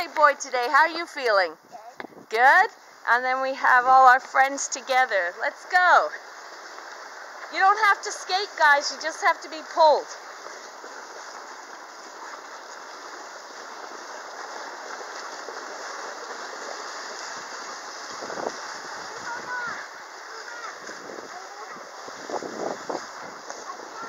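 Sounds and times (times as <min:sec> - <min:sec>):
skate blades sliding over ice: 0:05.6 - 0:24.0
children's voices: 0:18.8 - 0:22.3, 0:23.0 - 0:24.0.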